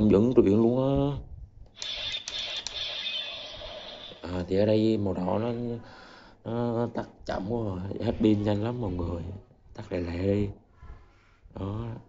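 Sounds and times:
toy sword sound effect: 1.8 - 4.4.

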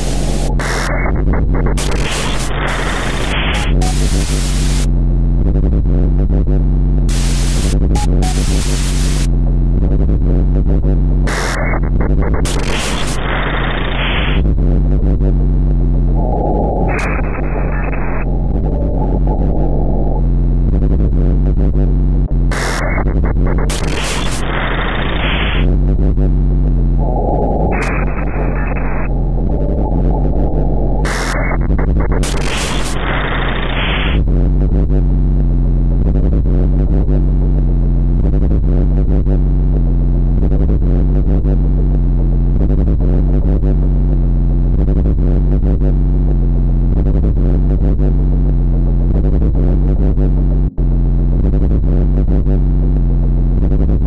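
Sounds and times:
distorted noise switching bands: 0.0 - 5.2, 6.3 - 35.0
bass drone: 0.0 - 54.0.

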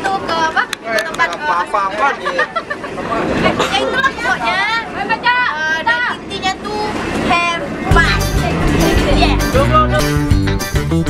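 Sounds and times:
people talking: 0.0 - 10.2
music with heavy bass: 7.9 - 11.0.

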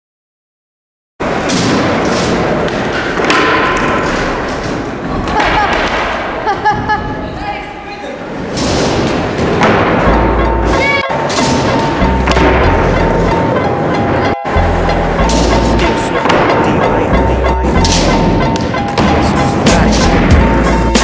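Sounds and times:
skateboard thuds and wheel noise: 1.2 - 6.4, 8.5 - 13.6
people's voices: 15.2 - 17.8, 19.0 - 20.7.

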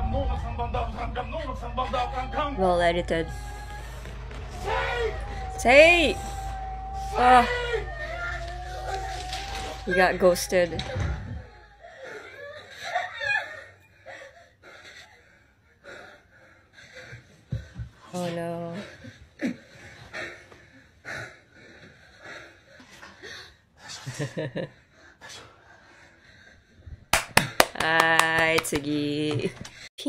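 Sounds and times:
sharp hand claps: 27.1 - 29.5.

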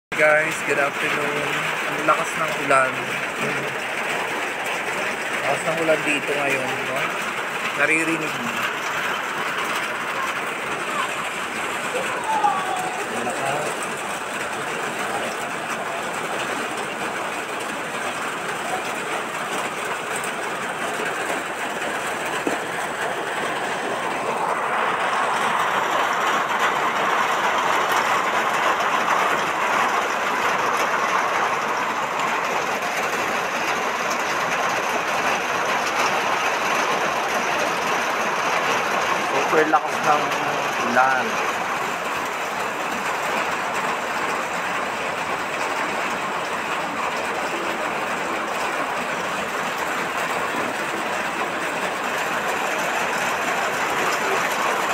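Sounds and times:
heavy rain pouring: 0.1 - 54.9.

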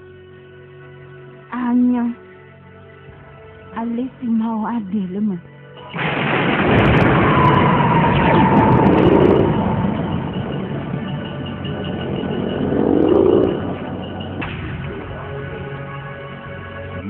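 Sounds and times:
blast sound effect rumble: 5.9 - 16.0.

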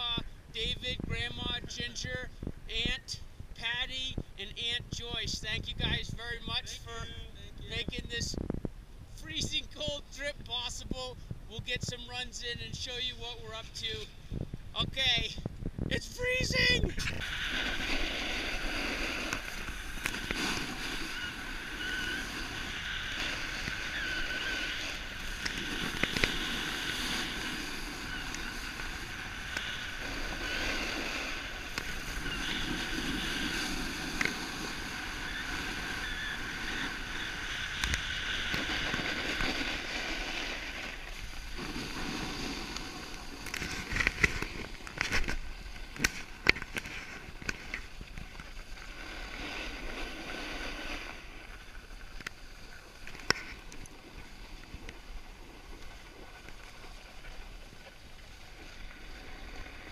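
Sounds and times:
skis hissing on snow: 16.3 - 44.8, 48.4 - 59.9.

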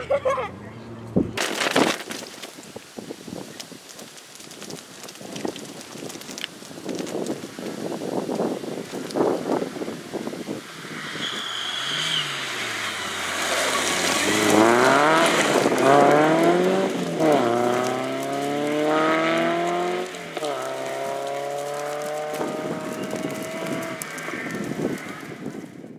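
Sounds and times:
rally car engine revving: 10.6 - 24.6.

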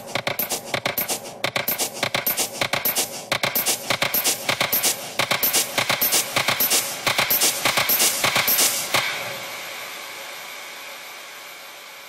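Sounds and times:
electronic white-noise wash: 0.0 - 12.0.

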